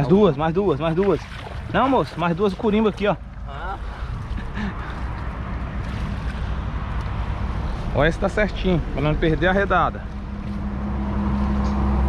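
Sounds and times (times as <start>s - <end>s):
shallow water sloshing: 0.0s - 7.9s.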